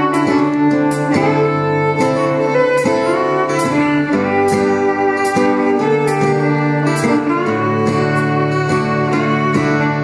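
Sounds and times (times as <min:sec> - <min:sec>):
live band instrumental: 0:00.0 - 0:10.0.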